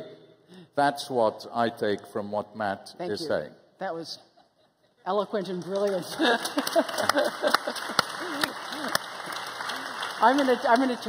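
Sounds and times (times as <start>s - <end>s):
audience applauding: 5.5s - 11.0s.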